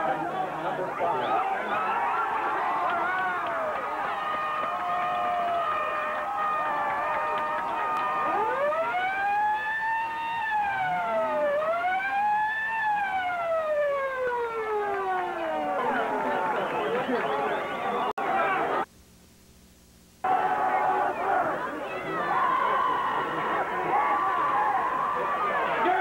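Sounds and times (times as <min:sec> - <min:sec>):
murmur of crowd voices: 0:00.0 - 0:08.6, 0:15.0 - 0:18.9, 0:20.3 - 0:26.0
siren wailing: 0:03.0 - 0:18.1.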